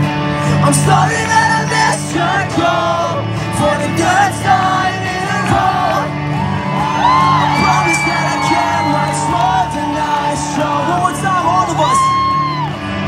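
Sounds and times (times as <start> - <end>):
live rock music: 0.0 - 13.0
people shouting and whooping: 5.4 - 13.0.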